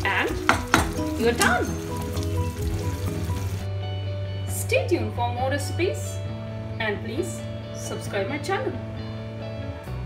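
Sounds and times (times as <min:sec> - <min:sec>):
background music held notes: 0:00.0 - 0:10.0
curry simmering in a pan: 0:00.4 - 0:03.7.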